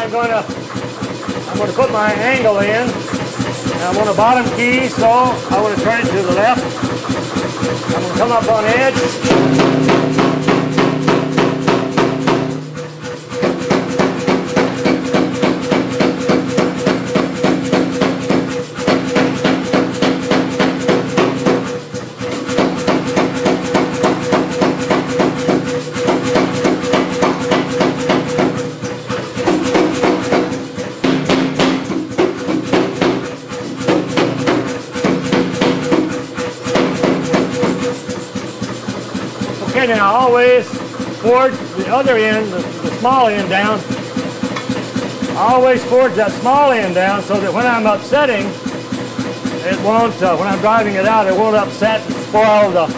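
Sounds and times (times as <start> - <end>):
machine humming: 0.0 - 52.9
power hammer striking hot steel: 0.0 - 52.9.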